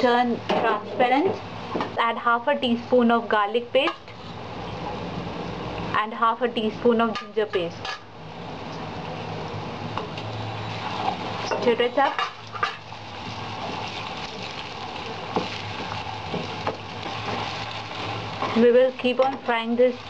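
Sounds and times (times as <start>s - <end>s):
onions sizzling in hot oil: 9.2s - 20.0s.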